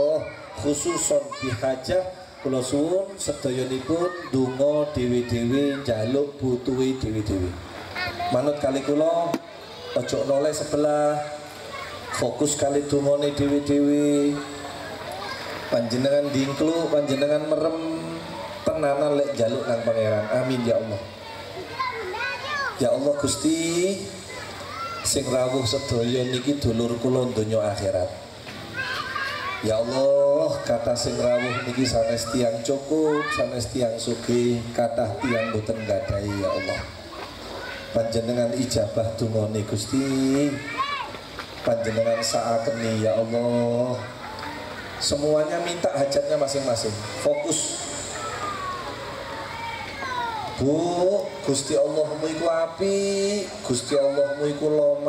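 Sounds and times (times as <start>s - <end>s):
man speaking: 0.0s - 7.7s, 8.3s - 11.5s, 12.1s - 14.7s, 15.7s - 21.1s, 22.8s - 24.3s, 25.0s - 28.3s, 29.6s - 36.9s, 37.9s - 40.8s, 41.6s - 44.2s, 45.0s - 48.3s, 50.6s - 55.0s
children calling and talking: 0.0s - 55.0s.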